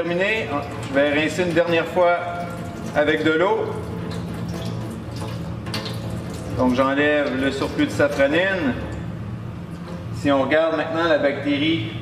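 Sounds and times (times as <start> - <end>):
water running into steel sink: 0.0 - 9.0.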